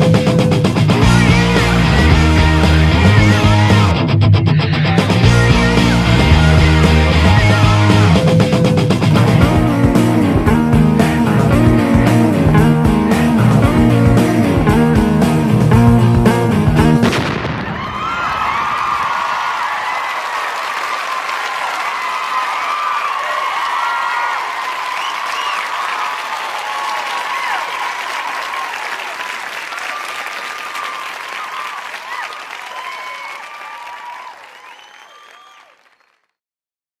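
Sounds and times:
audience cheering and clapping: 0.9 - 4.1, 4.8 - 8.2, 9.0 - 36.4
whoops and shouts: 17.6 - 35.8.

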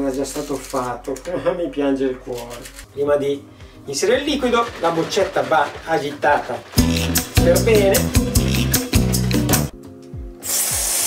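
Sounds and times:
beat-driven music: 3.8 - 11.0
compressed gas hissing: 10.4 - 11.0.

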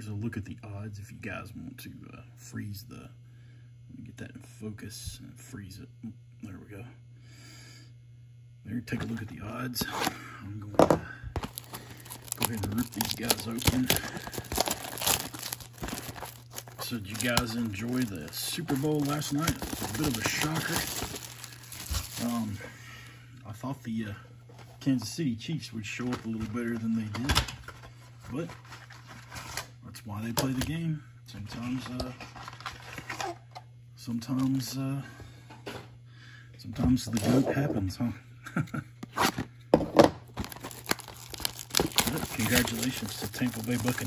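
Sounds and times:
steady low hum: 0.0 - 44.0
objects clicking and rustling: 10.8 - 22.4
foil wrapper crinkling: 11.4 - 22.6, 40.4 - 44.0.

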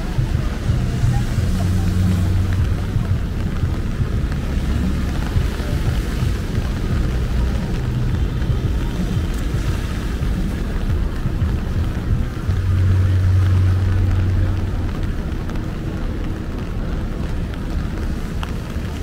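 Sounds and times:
low rumble: 0.0 - 19.0
traffic on wet pavement: 0.0 - 19.0.

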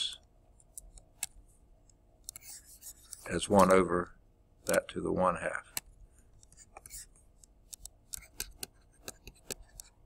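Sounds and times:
stylus tapping on tablet screen: 5.7 - 9.9.

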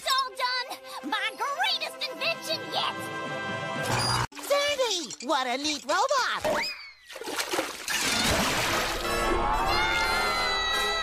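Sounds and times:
cartoon water splashing: 6.4 - 10.0
long high falling scream: 9.2 - 11.0.

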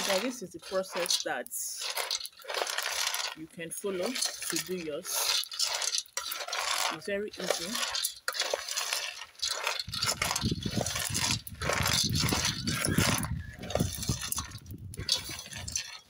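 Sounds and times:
kernels rattling in steel pot: 0.0 - 16.0.

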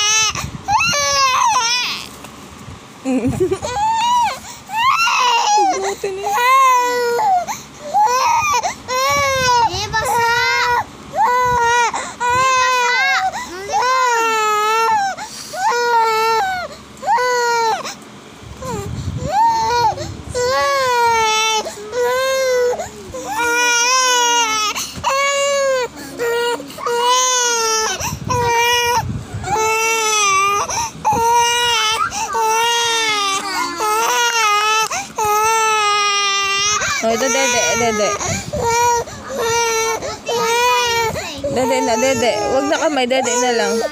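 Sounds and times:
baby crying: 0.0 - 2.1, 3.6 - 17.9, 18.6 - 43.9.

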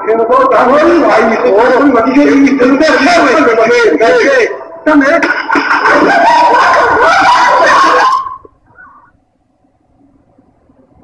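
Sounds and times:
loud voices shouting: 5.8 - 8.5.

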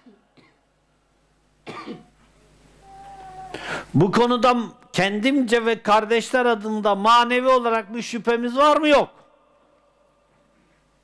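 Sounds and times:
man coughing: 1.6 - 2.2.

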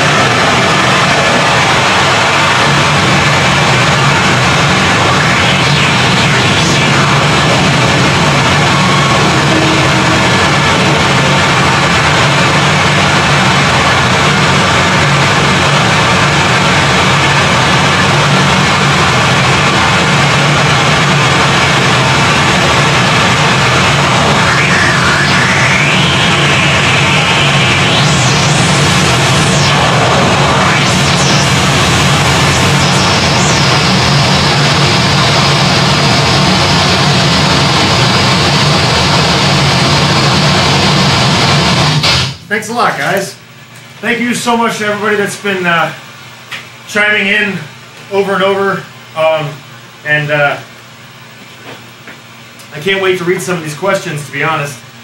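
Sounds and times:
shrill pitch sweeps: 0.0 - 12.7, 23.3 - 37.4
heavy low drone: 0.0 - 42.7
wall of distorted noise: 0.0 - 55.0.

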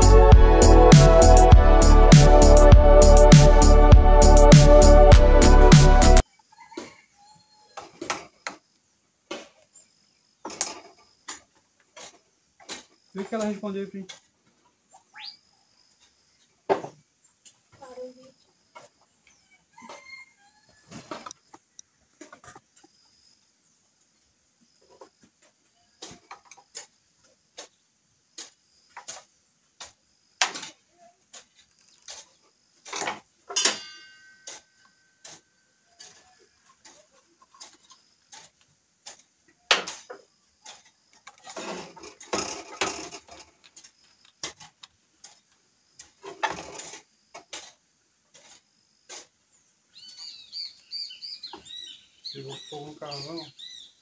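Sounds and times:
clicks and knocks of handling tools: 29.8 - 35.4.

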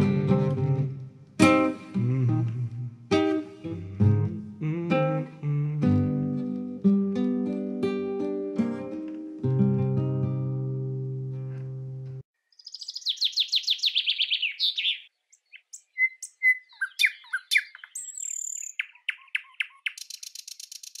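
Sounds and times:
classical guitar chord ringing: 3.2 - 12.2
birdsong trills and chirps: 12.4 - 21.0.

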